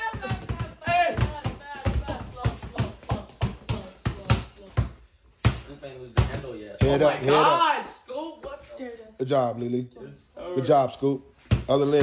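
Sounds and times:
basketball bouncing on concrete: 0.0 - 7.2, 11.4 - 12.0.

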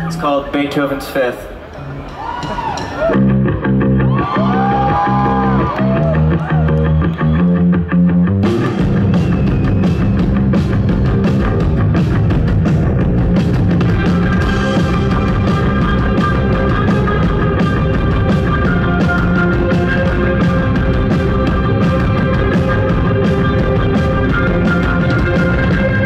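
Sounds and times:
electric guitars and bass riff: 2.6 - 26.0.

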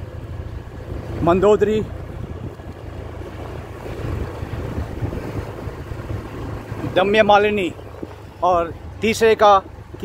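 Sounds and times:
wind buffeting microphone: 0.3 - 10.0.

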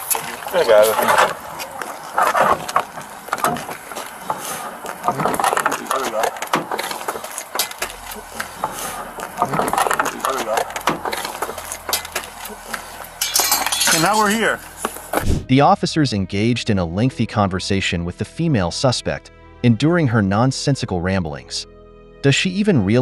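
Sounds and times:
indistinct voices talking: 0.0 - 18.7, 22.3 - 23.0.

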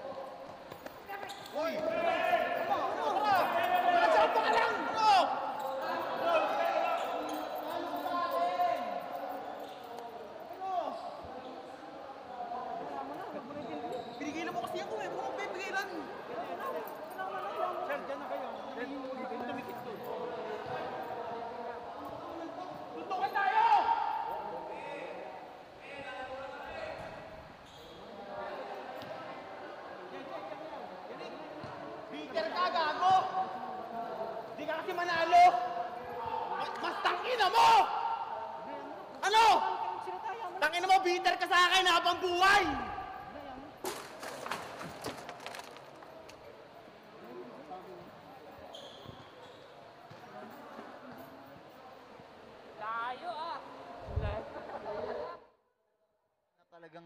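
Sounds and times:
men shouting and talking: 0.0 - 27.4, 28.1 - 48.4
murmur of voices: 0.0 - 55.6.

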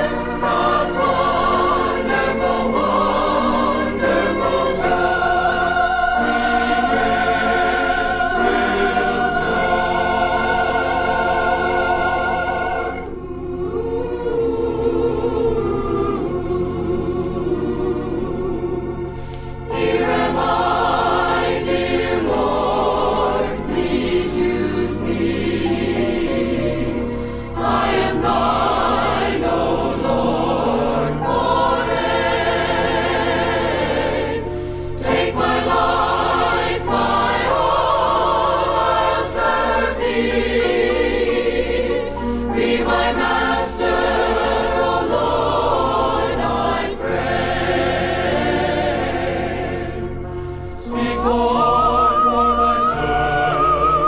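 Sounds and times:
choir singing gospel: 0.0 - 54.0
low musical accompaniment: 0.0 - 54.0.

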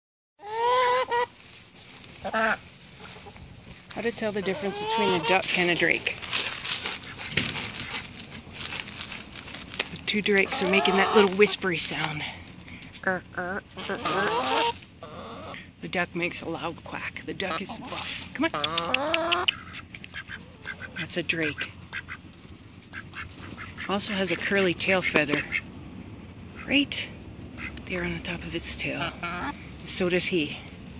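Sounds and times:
duck quacking: 2.2 - 2.6, 4.3 - 5.6, 13.8 - 15.6, 17.5 - 22.3
person speaking: 4.0 - 6.2, 9.9 - 14.7.

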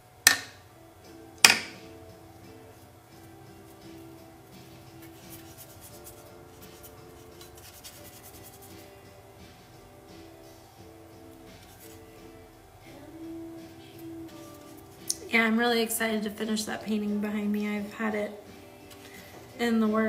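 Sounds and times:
faint music with held notes: 0.0 - 20.0.

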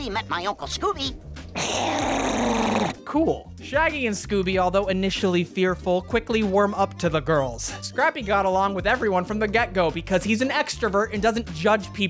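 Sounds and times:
cartoon dragon growl: 1.6 - 3.0.

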